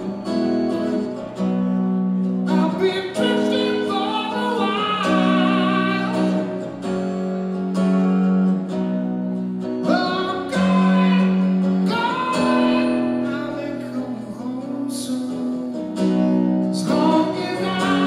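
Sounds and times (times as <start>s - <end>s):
acoustic guitar: 0.0s - 18.0s
man singing: 2.4s - 6.6s, 9.8s - 18.0s.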